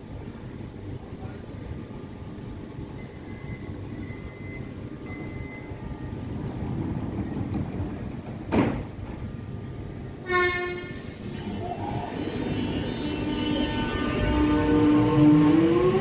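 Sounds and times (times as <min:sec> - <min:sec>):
electric train rumbling: 0:00.0 - 0:16.0
train horn tone: 0:10.2 - 0:11.1, 0:12.6 - 0:16.0.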